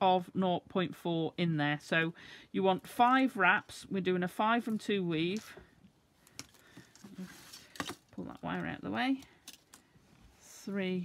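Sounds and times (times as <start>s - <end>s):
wire being wrapped by hand: 4.6s - 10.6s.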